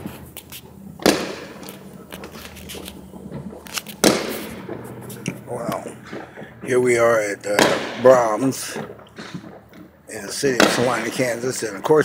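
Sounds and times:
firework bangs with echo: 0:01.0 - 0:01.7, 0:04.0 - 0:05.0, 0:07.5 - 0:09.4
firecracker pops: 0:01.0 - 0:02.9, 0:03.7 - 0:04.8.

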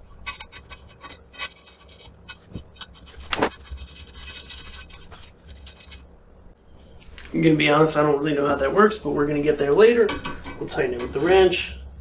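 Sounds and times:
small metal clicks and scrapes: 0:00.0 - 0:06.1.

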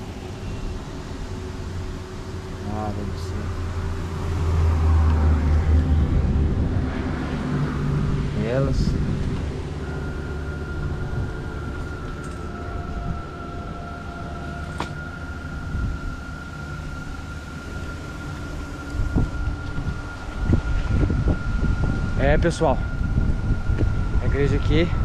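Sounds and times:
wind rumbling on microphone: 0:00.0 - 0:25.0
low bumps: 0:03.0 - 0:25.0.

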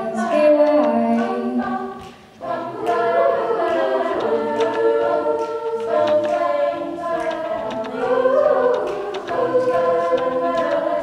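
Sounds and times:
a cappella group singing: 0:00.0 - 0:11.0
beatboxed percussion hits: 0:00.1 - 0:11.0.

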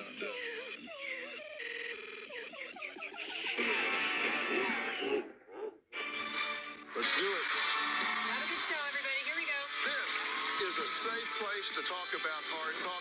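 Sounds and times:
chopped stuttering voices: 0:00.0 - 0:01.4
music: 0:06.0 - 0:13.0.

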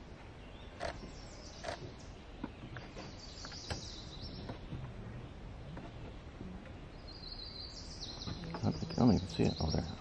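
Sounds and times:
faint outdoor background: 0:00.0 - 0:10.0
songbird singing: 0:00.0 - 0:10.0.

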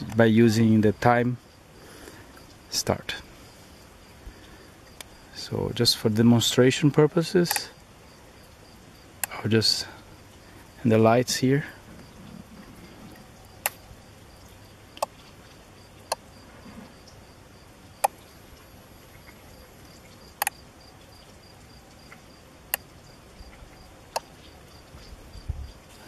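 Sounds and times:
faint insect chirping: 0:00.0 - 0:26.0
relays clicking: 0:07.4 - 0:07.7.

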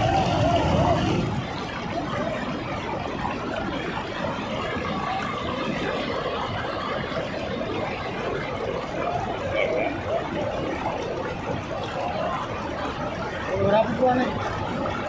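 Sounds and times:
rushing turbulent water: 0:00.0 - 0:15.0.

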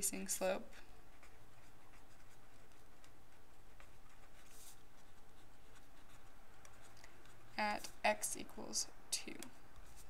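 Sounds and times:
marker scratching on paper: 0:01.0 - 0:08.3, 0:09.7 - 0:10.0.

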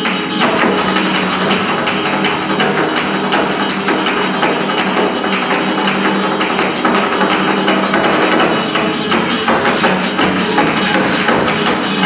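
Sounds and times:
flamenco guitar playing: 0:00.0 - 0:12.0
rapid hand-clapping: 0:00.0 - 0:12.0.

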